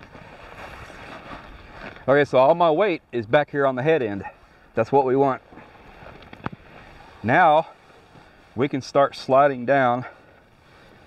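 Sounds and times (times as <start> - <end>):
nylon hammock fabric rustling: 0.0 - 2.8, 5.4 - 8.9.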